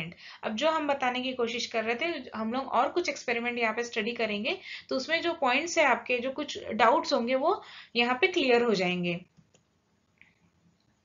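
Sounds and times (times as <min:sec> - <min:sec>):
woman's voice: 0:00.0 - 0:09.3.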